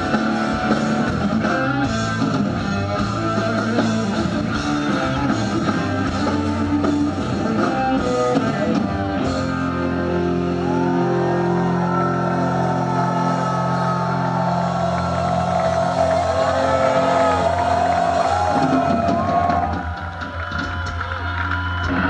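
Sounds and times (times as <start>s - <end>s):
drums: 0.0s - 22.0s
rock band playing live: 0.0s - 22.0s.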